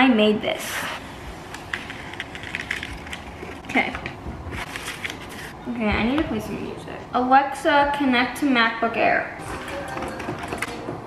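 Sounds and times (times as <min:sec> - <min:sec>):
paper crinkling: 0:01.6 - 0:03.9, 0:04.5 - 0:05.6.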